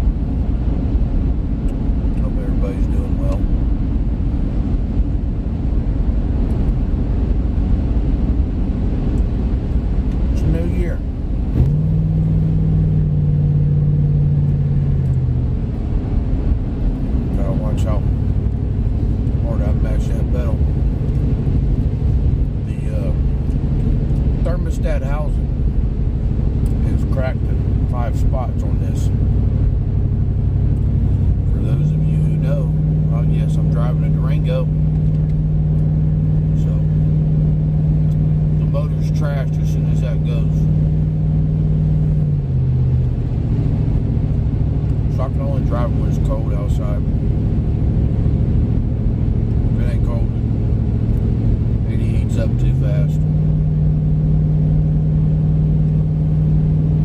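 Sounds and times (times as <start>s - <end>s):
low steady drone: 0.0s - 57.0s
road and engine rumble: 0.0s - 57.0s.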